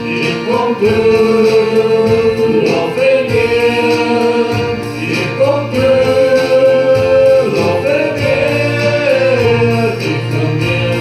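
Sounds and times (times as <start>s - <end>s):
congregation singing worship song: 0.0s - 11.0s
instrumental backing: 0.0s - 11.0s.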